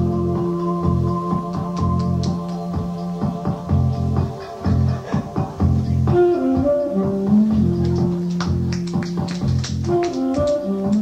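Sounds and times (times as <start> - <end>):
held bass line: 0.0 - 11.0.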